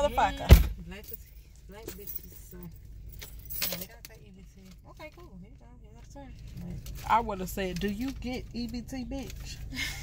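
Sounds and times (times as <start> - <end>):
short jangling rattle: 1.0 - 4.1.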